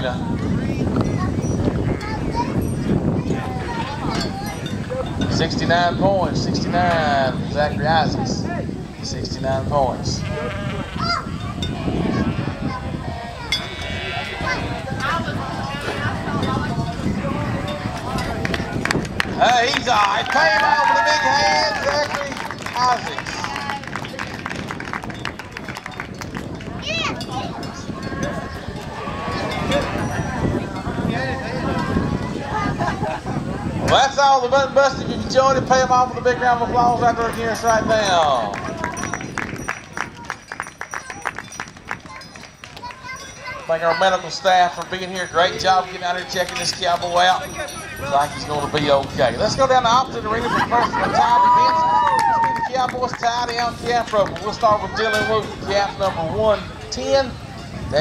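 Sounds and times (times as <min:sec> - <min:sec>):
murmur of voices: 0:00.0 - 0:58.0
spectators applauding: 0:18.4 - 0:26.8, 0:38.5 - 0:43.0, 0:51.3 - 0:53.6.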